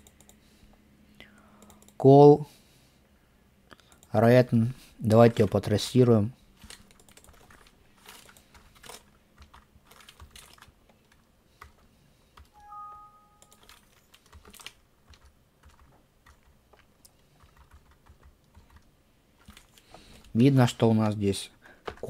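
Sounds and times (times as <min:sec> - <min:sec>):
computer keyboard clicks: 0:00.0 - 0:00.4, 0:01.6 - 0:02.0, 0:06.6 - 0:11.8, 0:13.4 - 0:20.3
two-note electronic chime: 0:12.6 - 0:13.6.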